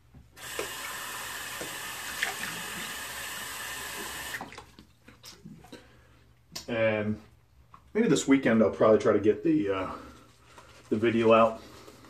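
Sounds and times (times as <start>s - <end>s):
tap running into sink: 0.4s - 3.0s.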